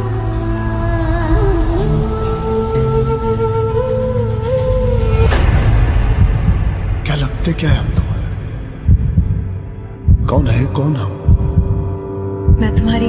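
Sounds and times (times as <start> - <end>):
low throbbing pulse with hum: 4.9 - 13.0.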